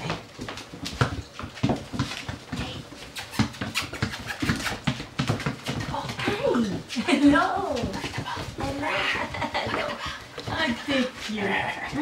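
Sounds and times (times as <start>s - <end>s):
puppies playing on tiled floor: 0.0s - 12.0s.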